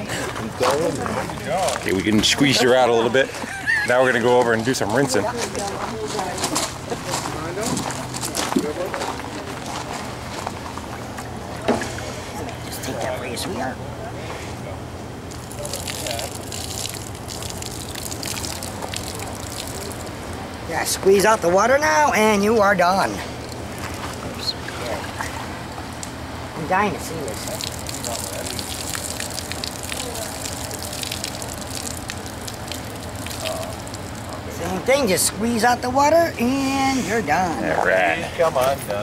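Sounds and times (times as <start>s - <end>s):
water pouring and splashing on gravel: 15.3s - 20.4s, 27.2s - 34.6s.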